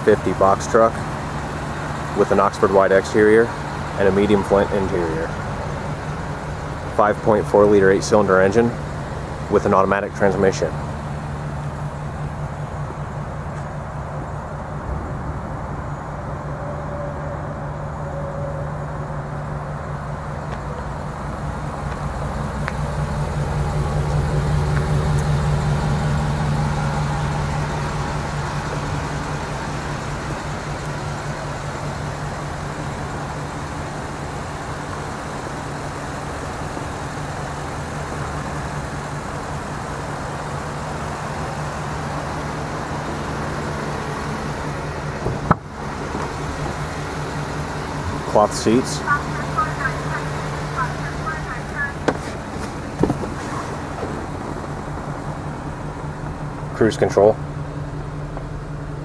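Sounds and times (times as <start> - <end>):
truck engine idling: 0.0 - 59.0.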